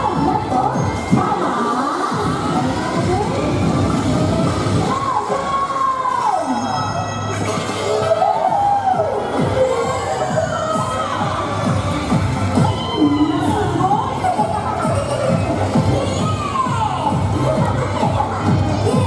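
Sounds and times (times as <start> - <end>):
upbeat music over loudspeakers: 0.0 - 19.0.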